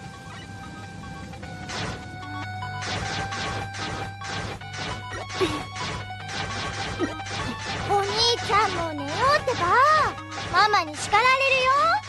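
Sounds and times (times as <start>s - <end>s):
music with held tones: 0.0s - 12.0s.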